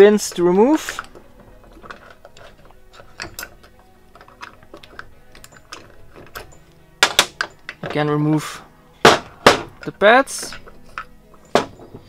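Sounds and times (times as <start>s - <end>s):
metallic clicks and scrapes: 0.0s - 8.0s, 9.8s - 12.0s.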